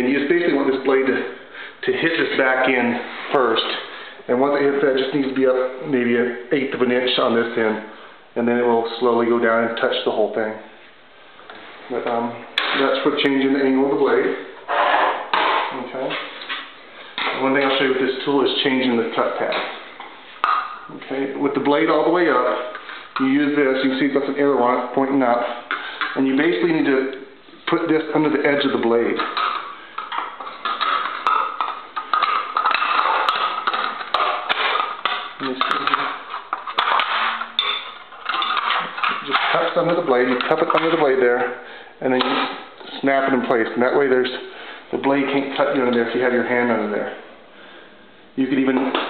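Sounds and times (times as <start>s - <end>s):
man talking: 0.0s - 10.8s, 11.9s - 14.6s, 15.6s - 16.4s, 17.2s - 19.9s, 20.9s - 29.4s, 35.4s - 36.3s, 39.0s - 47.3s, 48.4s - 49.0s
metal tool clanking on metal tray: 29.2s - 41.0s.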